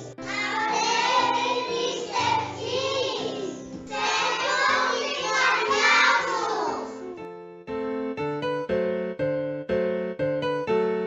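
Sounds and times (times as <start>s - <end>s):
children singing: 0.0s - 7.1s.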